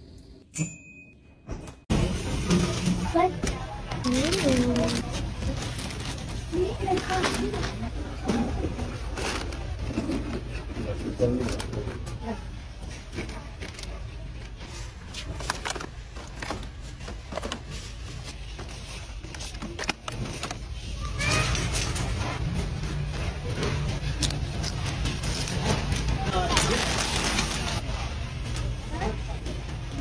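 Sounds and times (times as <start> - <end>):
plastic bags crinkling: 4.0 - 8.2, 23.9 - 27.8
plastic packs clicking and knocking: 15.2 - 22.2, 22.9 - 27.8.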